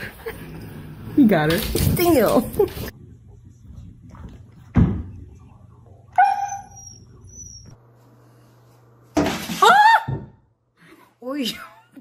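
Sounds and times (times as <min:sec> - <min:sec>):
dog whining call: 0:06.2 - 0:07.8.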